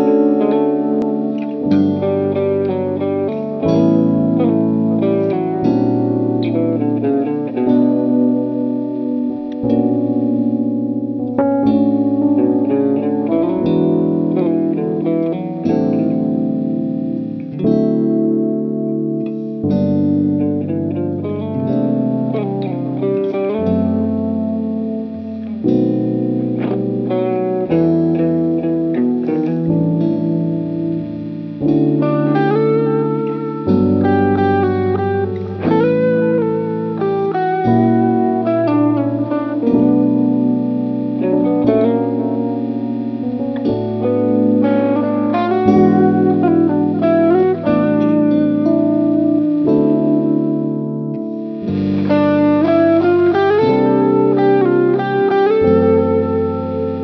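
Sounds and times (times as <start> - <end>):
electric guitar chords and melody: 0.0 - 57.0.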